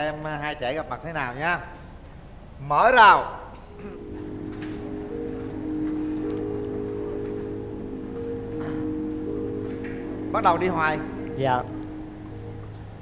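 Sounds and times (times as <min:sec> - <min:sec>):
background music of held notes: 0:03.7 - 0:13.0.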